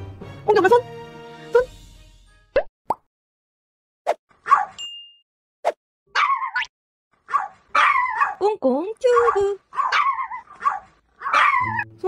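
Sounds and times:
cartoon pop sound effects: 2.6 - 3.1.

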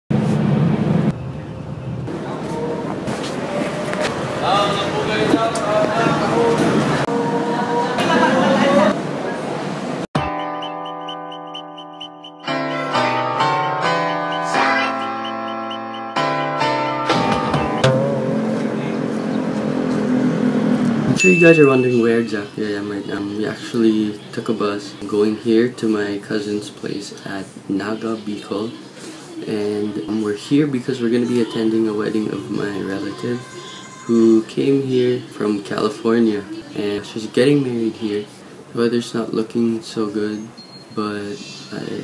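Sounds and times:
bus cabin rumble and hiss: 0.1 - 10.1
faint voices: 2.1 - 9.8.

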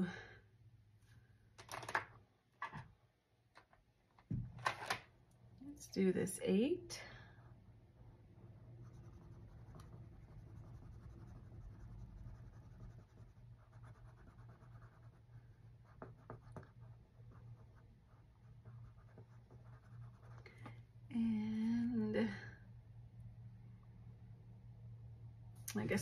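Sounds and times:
pen scratching on paper: 8.8 - 20.4.

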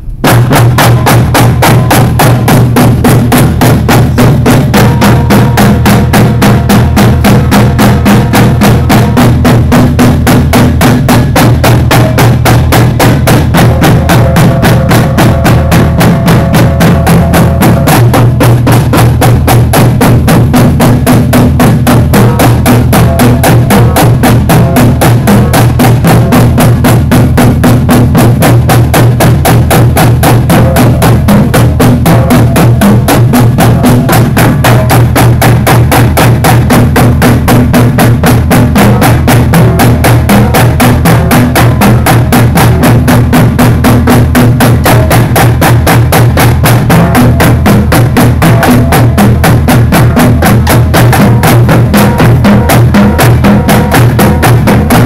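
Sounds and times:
bass drums: 0.0 - 55.0
snare and tenor drums: 0.0 - 55.0.

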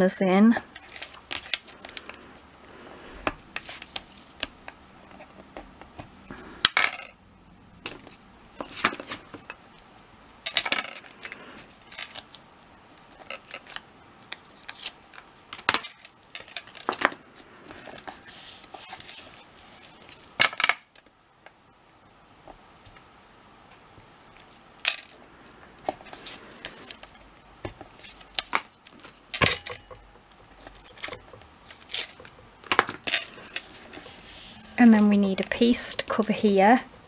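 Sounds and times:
craft tools tapping and scraping on card: 27.7 - 34.8.

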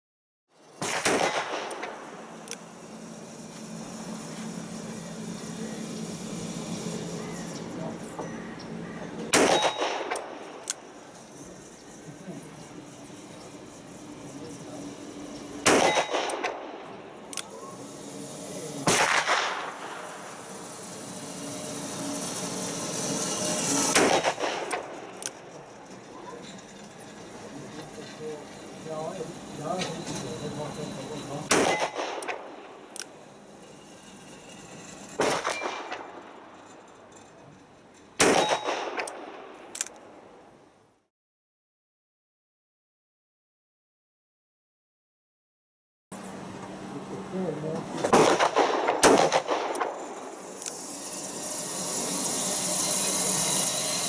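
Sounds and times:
revolver shots with ringing tail: 9.3 - 10.4, 15.6 - 16.8, 31.5 - 32.5.

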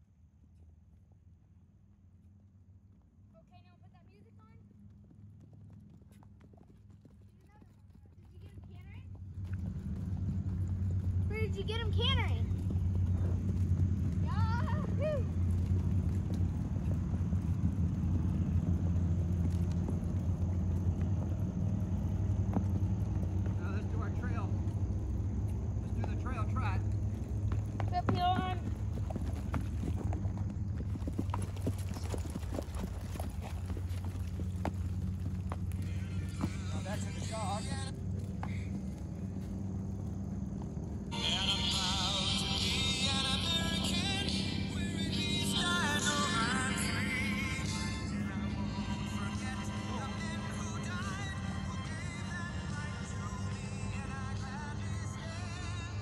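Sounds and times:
horse hoofbeats on grass: 2.8 - 56.0
steady low rumble: 8.7 - 56.0
low hum: 8.9 - 56.0.

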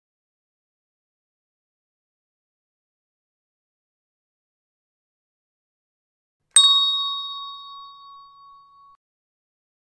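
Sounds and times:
bell-like ding: 6.6 - 9.0.

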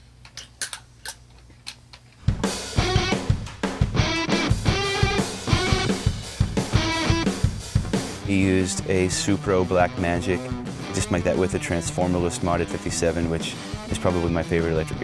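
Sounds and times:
drum kit: 2.2 - 15.0
electric guitar: 2.3 - 15.0.

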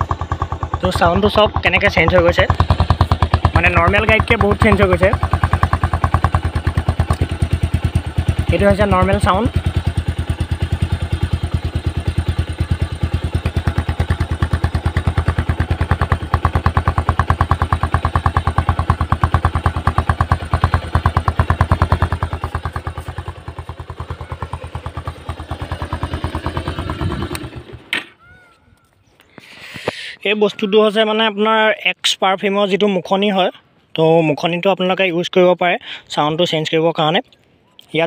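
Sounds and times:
motorcycle engine idling: 0.0 - 28.4.

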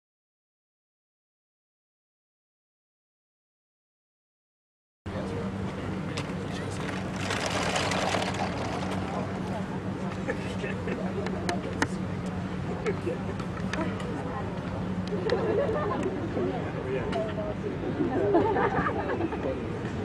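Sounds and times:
murmur of people talking: 5.1 - 20.0
steady low hum: 5.1 - 20.0.

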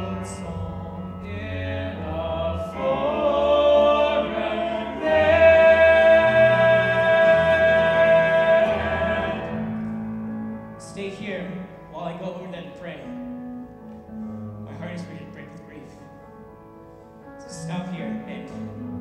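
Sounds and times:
cast singing in harmony: 0.0 - 10.0.

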